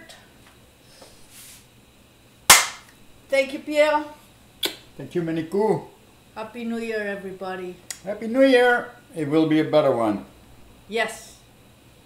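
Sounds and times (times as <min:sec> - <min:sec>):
high-five palm slap: 0:02.5 - 0:02.9.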